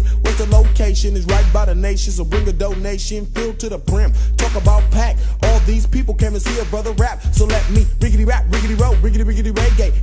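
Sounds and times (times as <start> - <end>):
hip-hop bass and drum beat: 0.0 - 10.0.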